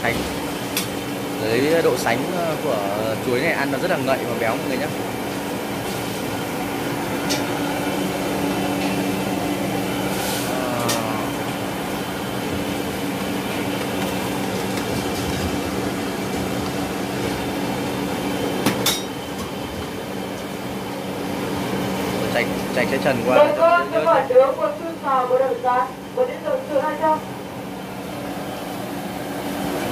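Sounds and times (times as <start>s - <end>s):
gas stove burners roaring: 0.0s - 29.9s.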